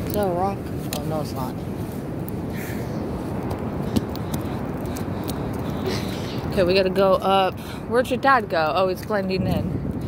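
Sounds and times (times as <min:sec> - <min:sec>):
ocean surf rumbling: 0:00.0 - 0:10.0
wind: 0:00.0 - 0:10.0.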